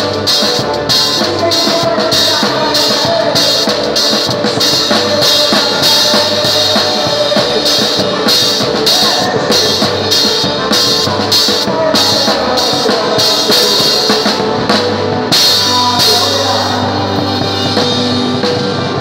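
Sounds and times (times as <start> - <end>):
drum kit beat: 0.0 - 19.0
live band music: 0.0 - 19.0.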